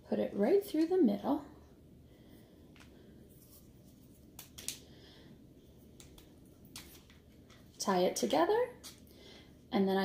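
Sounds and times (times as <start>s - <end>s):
faint clicks and rustles of cardboard: 5.8s - 7.8s.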